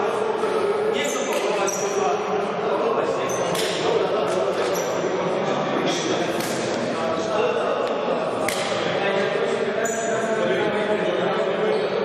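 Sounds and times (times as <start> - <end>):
sneaker squeaks on floor: 1.0 - 2.0, 9.8 - 10.2.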